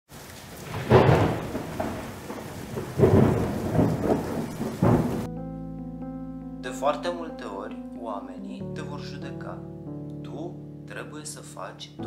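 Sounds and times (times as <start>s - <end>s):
heavy rain: 0.1s - 5.3s
thunder rolls: 0.4s - 5.3s.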